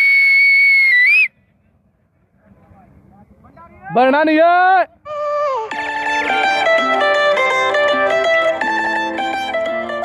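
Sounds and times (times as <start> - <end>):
long high whistle: 0.0 - 1.4.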